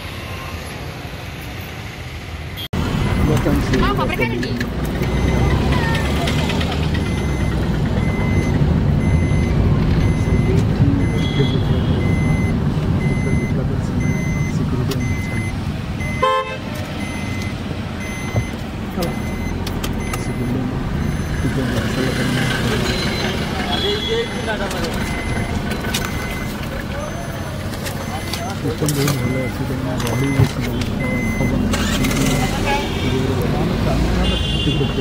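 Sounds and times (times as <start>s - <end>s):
car engine and road rumble: 0.0s - 35.0s
car horn toot: 11.0s - 12.4s, 16.1s - 16.7s, 34.2s - 35.0s.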